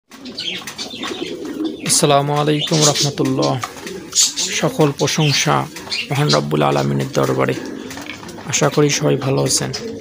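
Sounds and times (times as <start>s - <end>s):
pigeons cooing: 0.1s - 10.0s.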